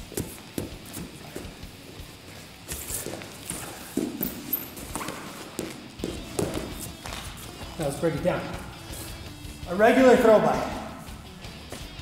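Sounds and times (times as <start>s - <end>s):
feet thudding on padded mat: 0.0s - 7.8s.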